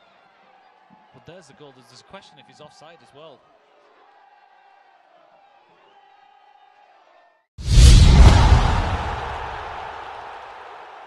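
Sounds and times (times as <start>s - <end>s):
deep boom with swoosh: 7.6s - 10.0s.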